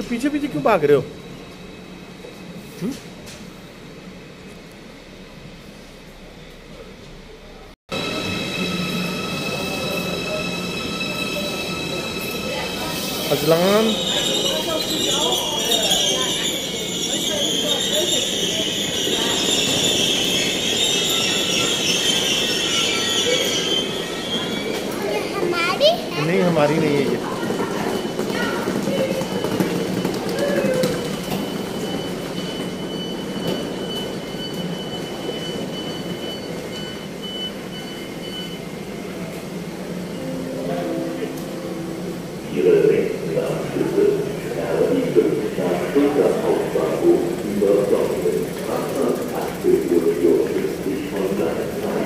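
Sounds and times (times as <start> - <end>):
rumble of train cars: 0.0 - 52.0
train wheels squealing: 8.0 - 39.3
train low rumble: 27.2 - 52.0
thin high pulsing tone: 40.1 - 44.0.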